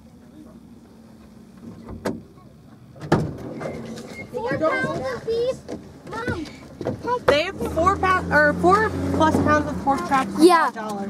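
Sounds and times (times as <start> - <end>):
vehicle door banging: 1.6 - 7.9.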